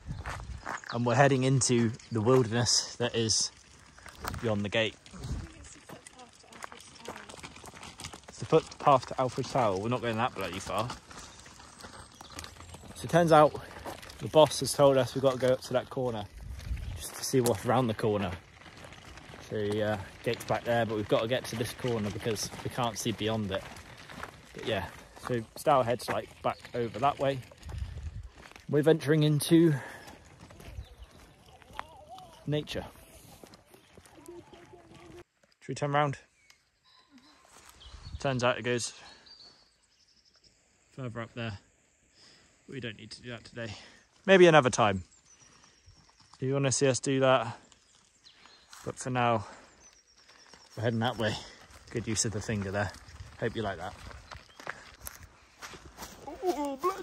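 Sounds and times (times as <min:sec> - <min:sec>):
footsteps crunching on gravel: 0:00.0 - 0:35.6, 0:37.2 - 0:38.2, 0:43.7 - 0:57.0
faint high bird chirp: 0:36.2 - 0:38.4.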